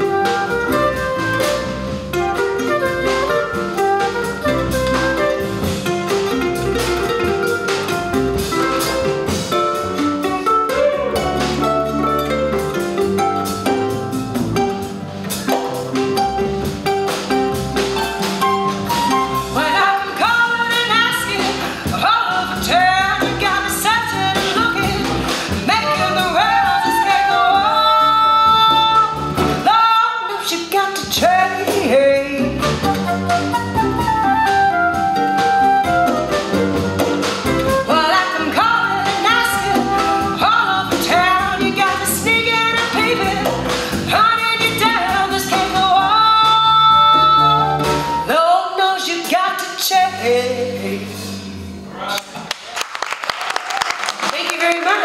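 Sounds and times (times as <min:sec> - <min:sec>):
small live band playing: 0:00.0 - 0:55.0
scattered applause: 0:52.0 - 0:55.0.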